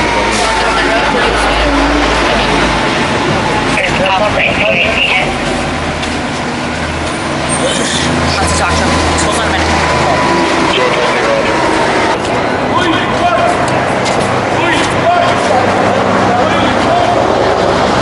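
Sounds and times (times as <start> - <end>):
indistinct voices talking: 0.0 - 18.0
road traffic: 0.0 - 18.0
vehicle engine hum: 0.0 - 18.0.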